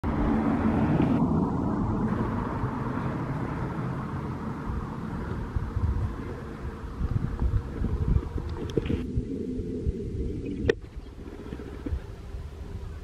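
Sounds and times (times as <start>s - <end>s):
vehicle rumbling by: 0.0s - 10.4s.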